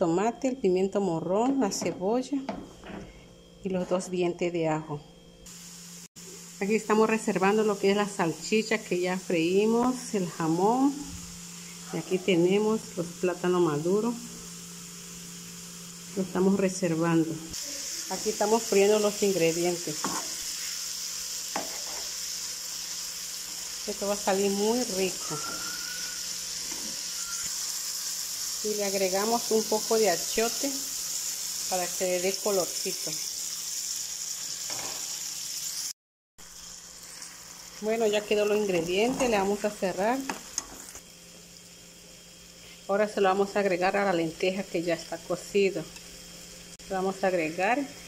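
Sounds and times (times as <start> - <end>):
vegetables sizzling in oil: 5.5 - 48.0.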